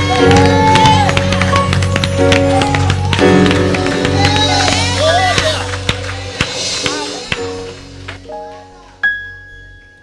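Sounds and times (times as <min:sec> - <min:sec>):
live church band music: 0:00.0 - 0:09.0.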